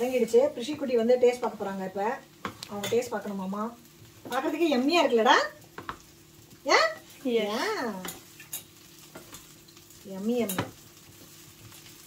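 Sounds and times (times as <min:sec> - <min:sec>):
curry simmering and sizzling: 0:00.0 - 0:12.0.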